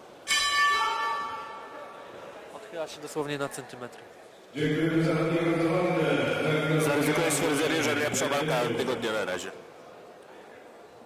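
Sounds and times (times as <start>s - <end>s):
boxing ring bell ringing: 0.3s - 1.8s.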